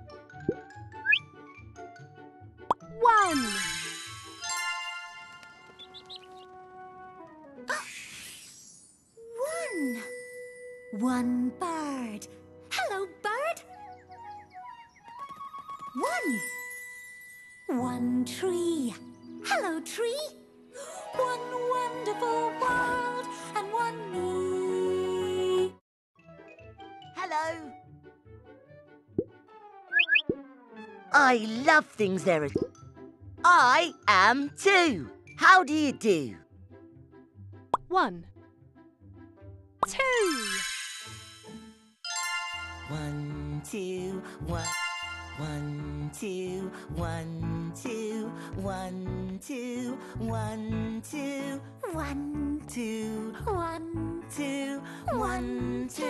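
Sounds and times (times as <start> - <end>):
bouncy children's music: 14.8 - 20.4, 21.0 - 28.0, 31.1 - 36.4, 39.8 - 56.0
cartoon rising bloop: 29.9 - 30.4.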